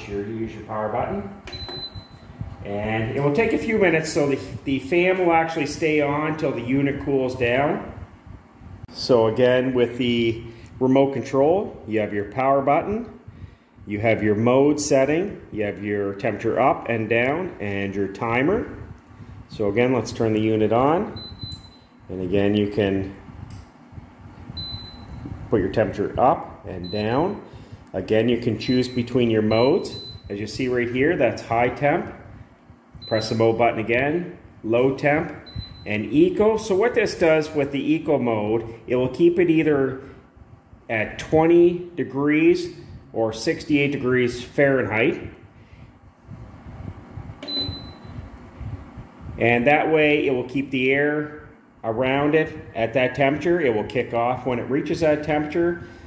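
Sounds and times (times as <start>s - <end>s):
heater fan running: 0.0s - 56.0s.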